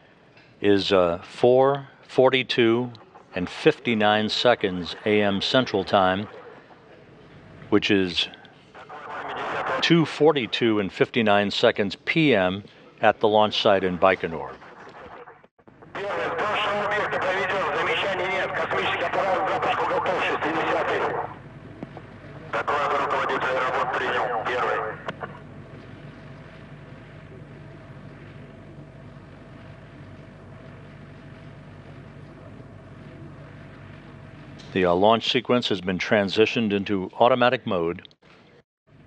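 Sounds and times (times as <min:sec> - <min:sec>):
faint steady hum: 0:00.0 - 0:39.0
speech over a radio: 0:01.6 - 0:07.0, 0:07.8 - 0:21.4, 0:22.3 - 0:25.4.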